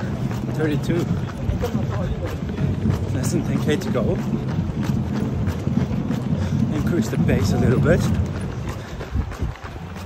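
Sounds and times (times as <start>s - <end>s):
low rumble of movement and wind: 0.0s - 10.0s
running footsteps on road: 0.0s - 10.0s.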